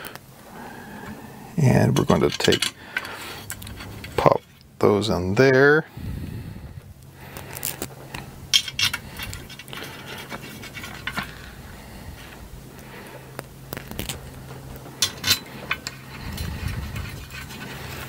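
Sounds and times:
metal rubbing and scraping: 1.0 - 4.8, 8.5 - 12.4, 13.8 - 18.0
metal parts clicking and clinking: 1.9 - 4.6, 7.6 - 11.5, 14.8 - 18.0.

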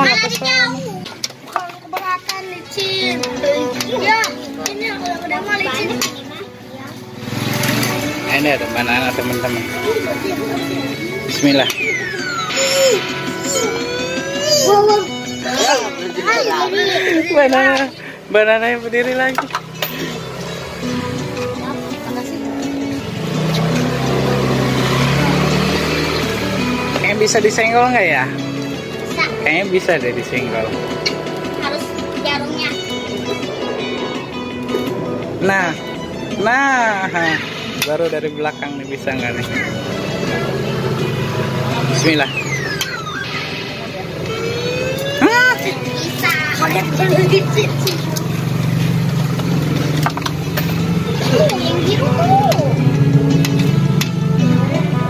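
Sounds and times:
claw machine electronic jingle: 7.9 - 16.6, 37.2 - 47.8
low engine-like drone: 39.6 - 55.0.

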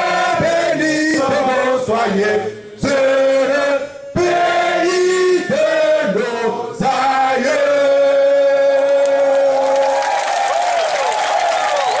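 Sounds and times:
crowd singing in unison: 0.0 - 9.4.

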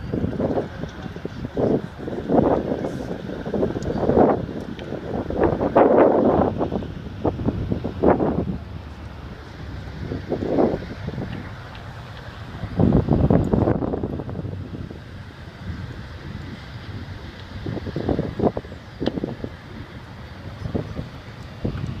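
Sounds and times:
low outdoor rumble: 0.0 - 22.0
wind buffeting microphone: 0.0 - 22.0.

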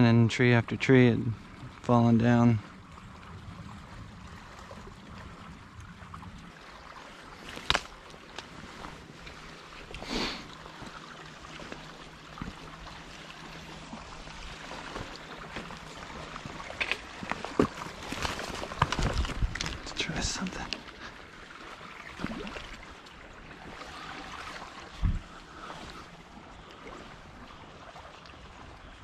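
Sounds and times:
river water running: 0.0 - 29.0
sharp crackles and knocks: 7.4 - 10.1, 14.7 - 20.0.

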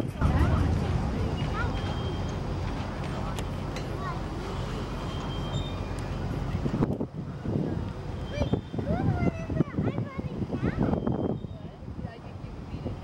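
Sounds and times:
freight cars rolling on rails: 0.0 - 13.0.

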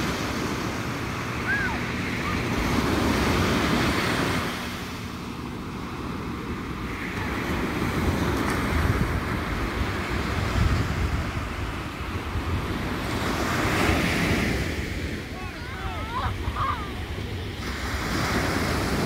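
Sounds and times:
ocean surf breaking: 0.0 - 19.0
wind rumbling on microphone: 0.0 - 19.0.

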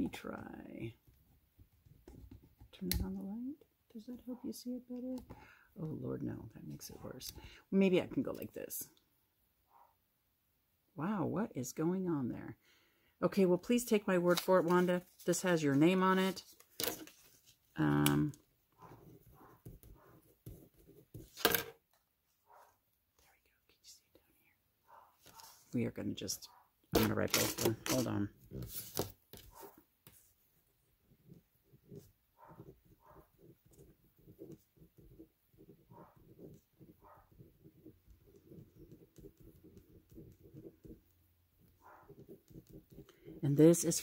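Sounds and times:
ballpoint pen scratching paper: 13.7 - 21.4, 27.0 - 44.0
person whispering: 23.2 - 24.6.

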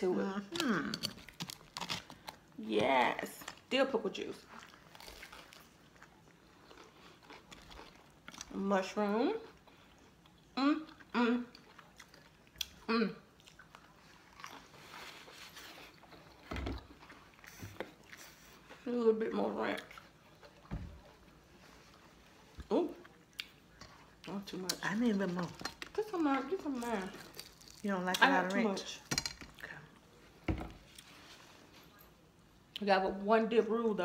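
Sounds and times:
chewing crispy fried food: 0.5 - 2.6, 4.3 - 18.9, 19.7 - 28.6.

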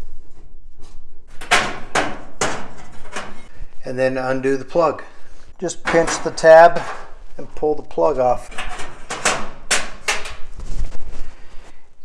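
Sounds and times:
rustling and scraping in metal cavity: 0.0 - 11.4.

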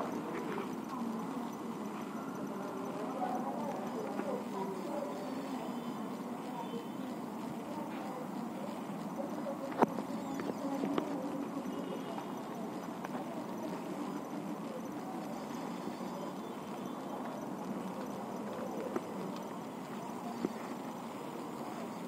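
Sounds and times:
steady background noise: 0.0 - 22.0.

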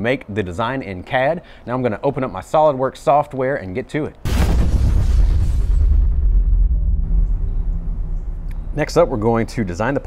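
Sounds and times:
deep rumbling boom: 4.3 - 9.5.

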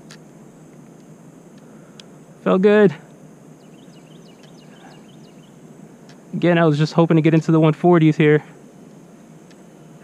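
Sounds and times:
outdoor background noise: 0.0 - 10.0
faint bird chirps: 3.5 - 6.3, 9.2 - 10.0.

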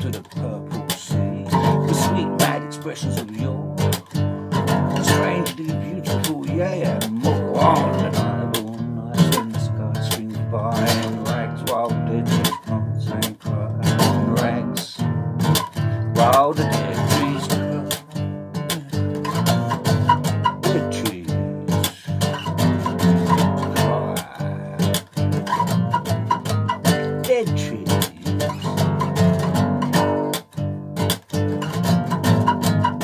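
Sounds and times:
bass guitar plucked: 0.0 - 33.0
man singing wordlessly: 0.0 - 33.0.

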